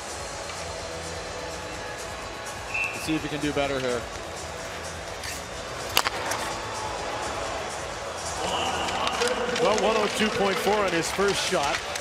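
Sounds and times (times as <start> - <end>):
arena crowd noise: 0.0 - 12.0
hockey slap shot crack: 5.2 - 6.8, 8.4 - 12.0.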